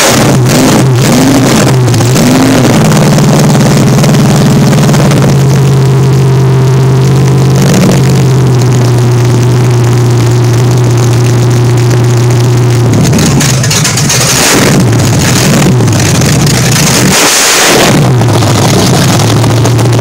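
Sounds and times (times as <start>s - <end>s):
car engine revving: 0.0s - 20.0s
engine fast idle: 0.0s - 20.0s.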